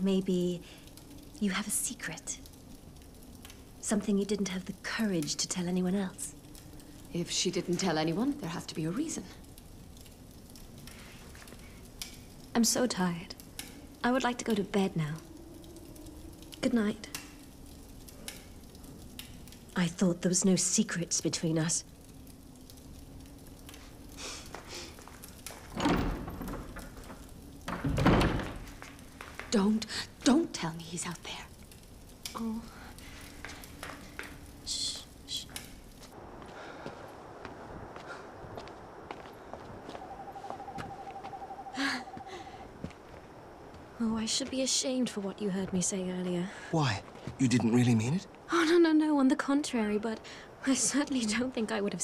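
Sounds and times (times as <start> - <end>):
breathy noise: 23.7 - 25.3, 41.7 - 42.8
owl trilling: 39.8 - 42.6.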